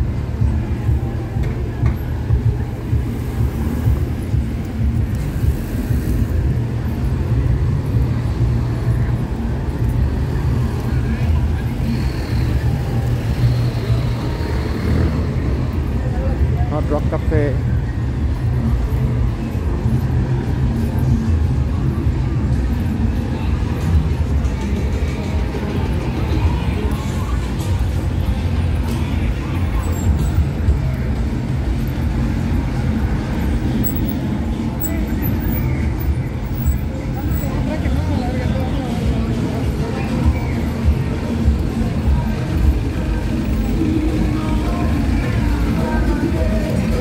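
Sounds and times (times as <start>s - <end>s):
music: 0.0s - 16.6s, 17.6s - 47.0s
cars and minibus driving past: 0.0s - 47.0s
low traffic rumble: 0.0s - 47.0s
voices: 0.0s - 47.0s.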